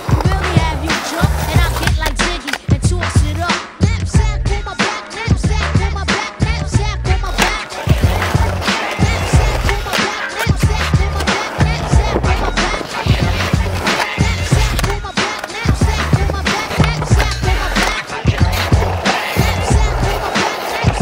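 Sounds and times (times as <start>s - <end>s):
skateboard wheels rolling on concrete: 0.0s - 3.5s, 7.2s - 21.0s
music with steady beat: 0.0s - 21.0s.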